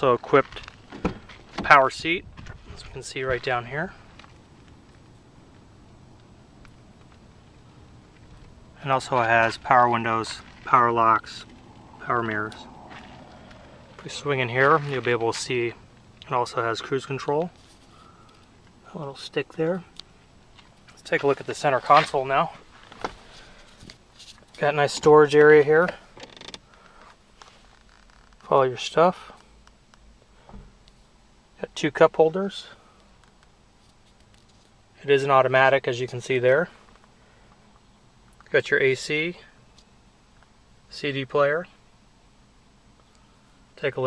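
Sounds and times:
faint background noise: 0.0 - 44.0
plastic console lid creaking: 26.2 - 26.7.

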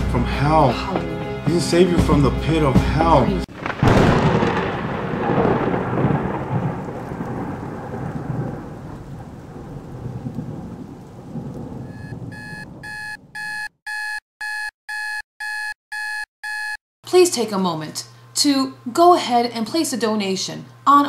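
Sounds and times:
thunder rumbling: 3.4 - 13.4
digital alarm clock beeping: 11.9 - 16.8.

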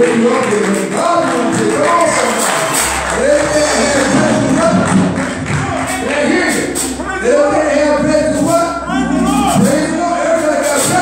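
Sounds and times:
gospel singing with accompaniment: 0.0 - 11.0
low bass tone: 1.5 - 11.0.

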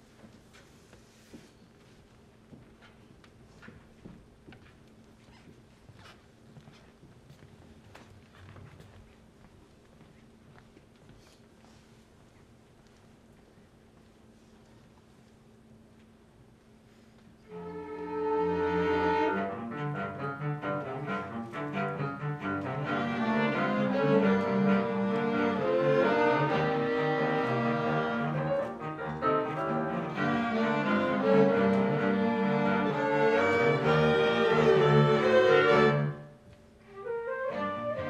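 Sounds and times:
chamber orchestra playing upbeat piece: 17.6 - 36.2, 37.0 - 38.0.

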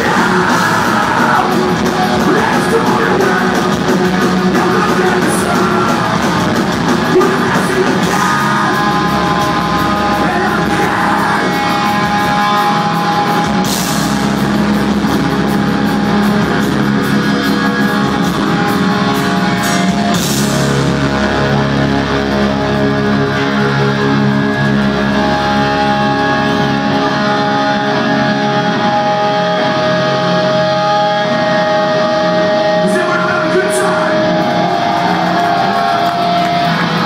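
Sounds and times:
bass guitar: 0.0 - 37.0
distorted electric guitars: 0.0 - 37.0
drums: 0.0 - 37.0.

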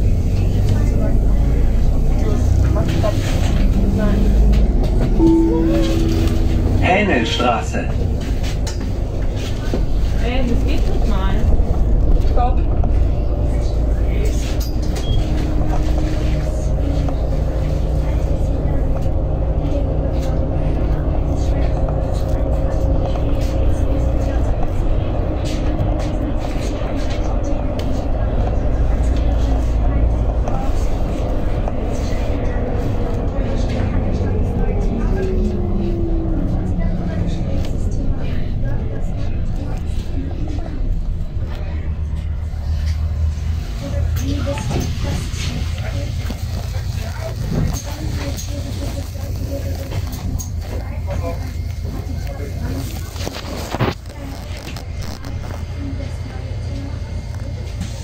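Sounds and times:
bus drive whine: 0.0 - 58.0
bus engine rumble: 0.0 - 58.0.

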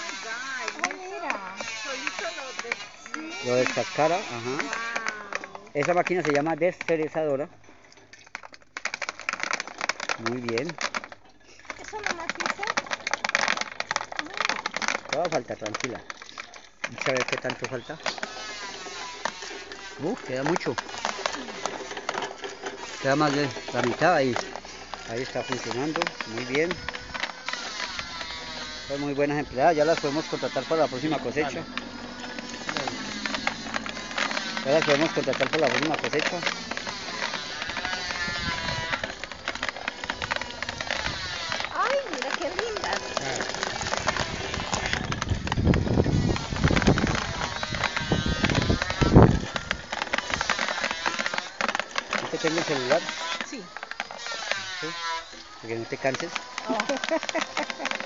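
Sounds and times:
coffee pulper clattering: 0.0 - 58.0.

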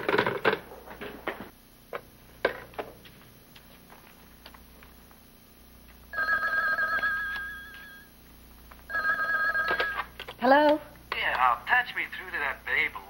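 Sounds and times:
telephone warbling ring: 6.1 - 8.1, 8.9 - 10.1.

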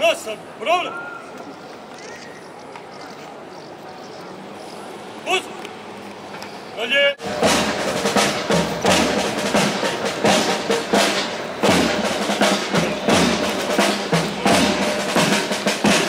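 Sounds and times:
bass drum strokes: 7.2 - 16.0
snare drum marching rhythm: 7.2 - 16.0.

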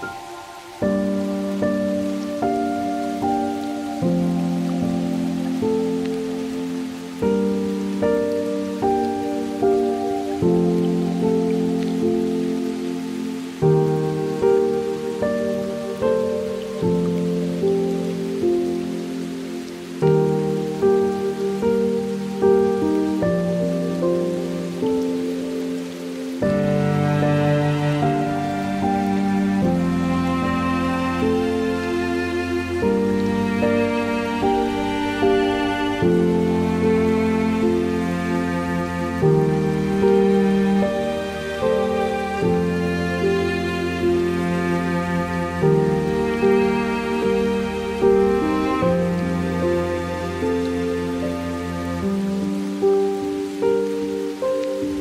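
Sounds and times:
slow gentle piano music: 0.0 - 55.0
steady rain: 0.0 - 55.0.

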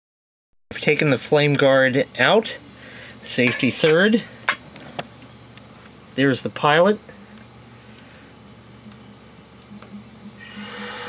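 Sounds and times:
gas boiler low hum: 0.7 - 11.0.

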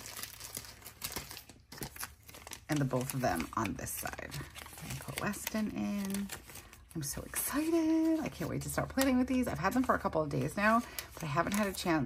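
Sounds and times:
plastic sleeves and paper crinkling: 0.0 - 12.0.

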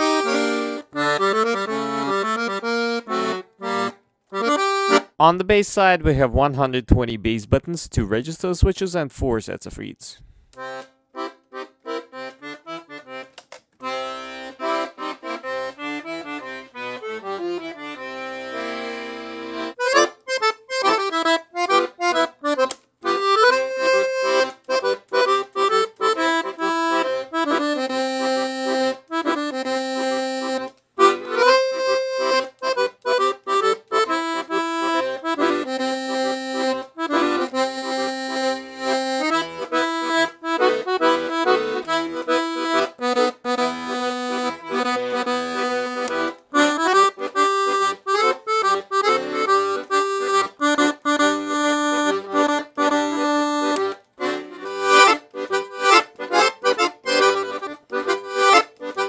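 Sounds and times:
piano accordion playing: 0.0 - 6.4, 10.5 - 59.0.

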